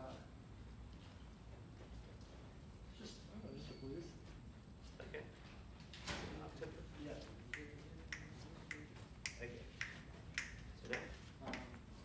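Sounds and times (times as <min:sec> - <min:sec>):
finger snaps: 0:07.5 - 0:11.9.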